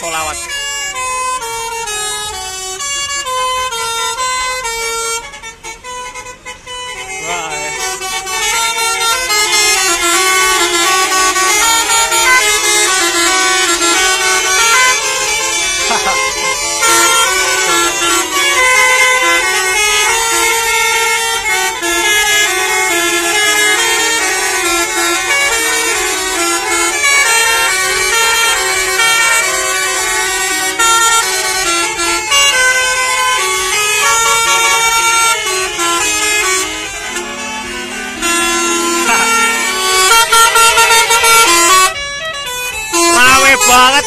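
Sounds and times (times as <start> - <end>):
bus horn playing a tune: 0.0 - 44.0.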